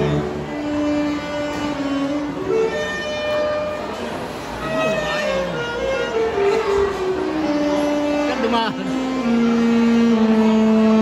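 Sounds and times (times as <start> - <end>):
alto saxophone long notes: 0.0 - 11.0
wind band playing: 0.0 - 11.0.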